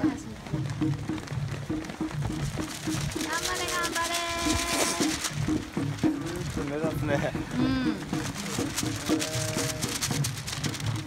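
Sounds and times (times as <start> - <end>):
crowd noise: 0.0 - 11.0
music playing: 0.0 - 11.0.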